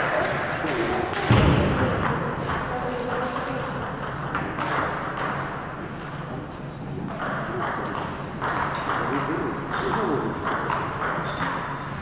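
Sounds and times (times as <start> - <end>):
table tennis balls clicking: 0.0 - 6.2, 7.0 - 12.0
voices in a hall: 0.0 - 12.0.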